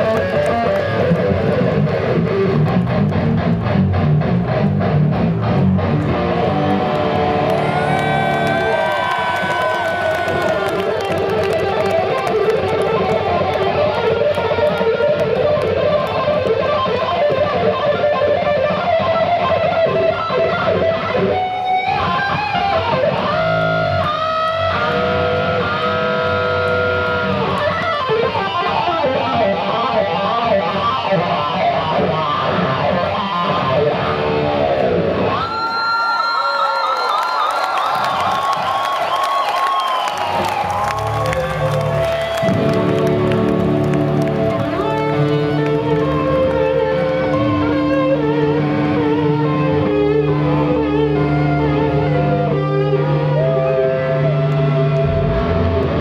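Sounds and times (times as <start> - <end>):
electric guitar lead solo: 0.0 - 36.0, 40.4 - 56.0.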